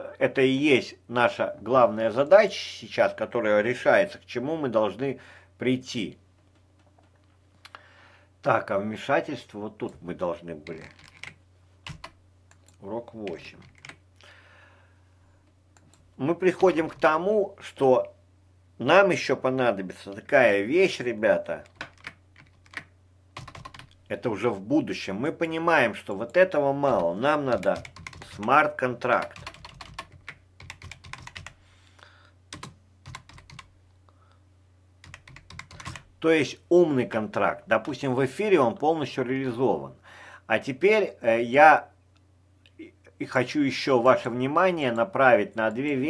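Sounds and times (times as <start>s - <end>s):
faint low hum: 0.0s - 46.0s
computer keyboard typing: 10.6s - 14.0s, 21.6s - 24.0s, 26.9s - 28.4s, 29.2s - 31.6s, 32.5s - 33.7s, 35.0s - 36.1s.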